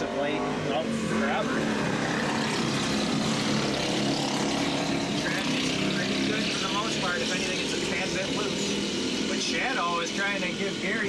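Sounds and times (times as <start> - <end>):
go-kart engines racing: 0.0 - 11.0.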